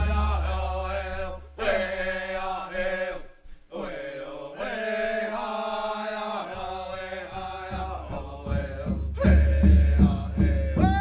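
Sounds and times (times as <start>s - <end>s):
chanting voices holding notes: 0.0s - 11.0s.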